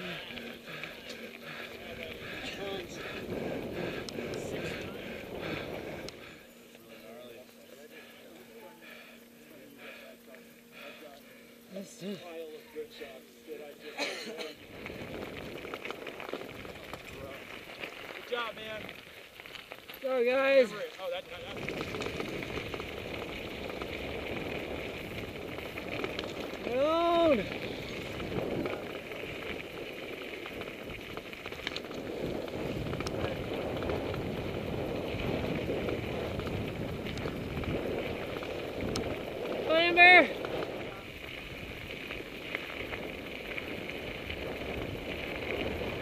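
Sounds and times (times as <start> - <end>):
bike tyres crunching on gravel: 0.0 - 11.6, 12.2 - 46.0.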